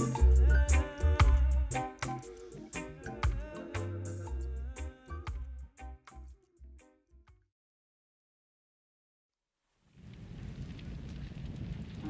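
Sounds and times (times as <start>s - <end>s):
rushing rain-like noise: 10.0s - 12.0s.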